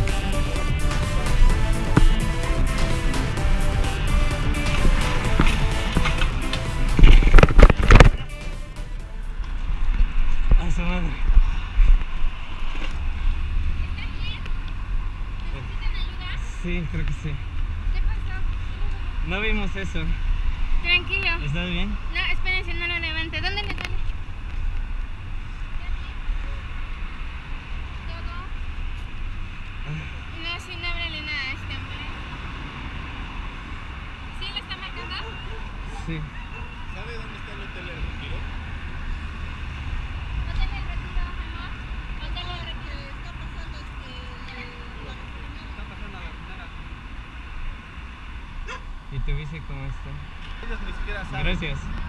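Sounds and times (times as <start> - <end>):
street traffic rumble: 0.0 - 52.0.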